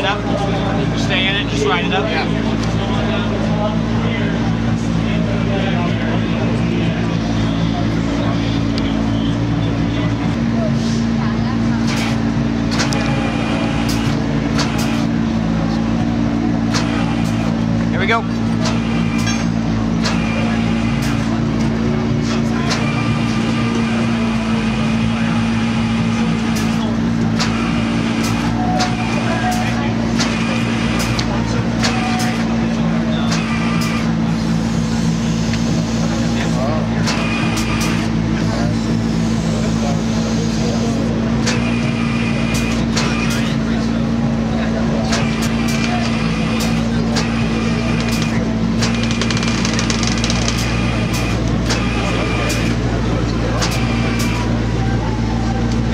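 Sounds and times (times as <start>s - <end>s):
crowd chatter: 0.0s - 55.9s
hydraulic drone: 0.0s - 55.9s
sharp clicks: 48.0s - 50.8s.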